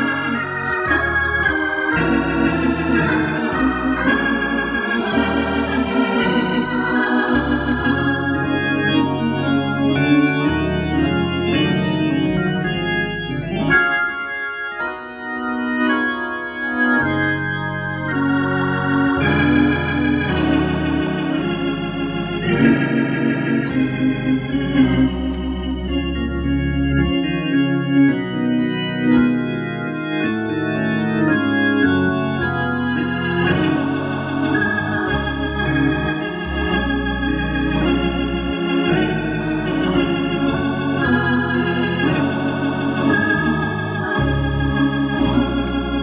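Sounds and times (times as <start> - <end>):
gospel organ chords: 0.0 - 46.0.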